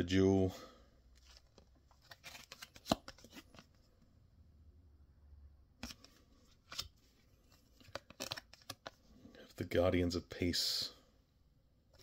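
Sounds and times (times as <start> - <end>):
trading cards rustling: 1.1 - 3.8, 5.8 - 9.6.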